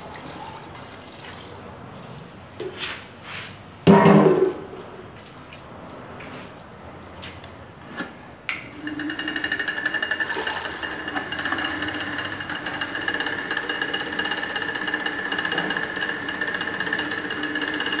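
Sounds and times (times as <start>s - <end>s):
electric stirrer motor whining: 8.8s - 18.0s.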